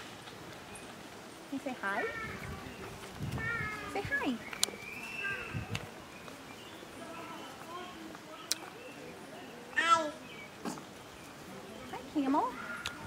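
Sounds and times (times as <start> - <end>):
faint background chatter: 0.8 - 13.0.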